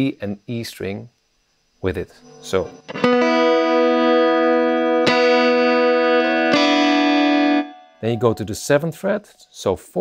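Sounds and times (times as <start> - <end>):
electric guitar chord strums: 2.2 - 8.7.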